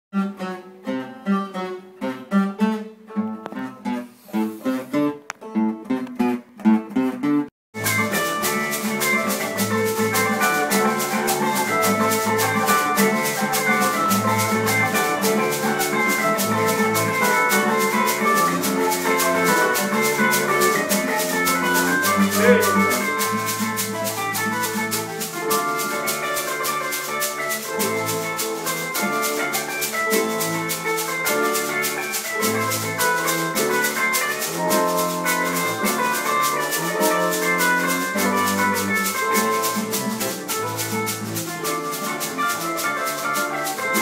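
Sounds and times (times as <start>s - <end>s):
acoustic guitars playing: 0.1s - 44.0s
metal tube shaker: 7.8s - 44.0s.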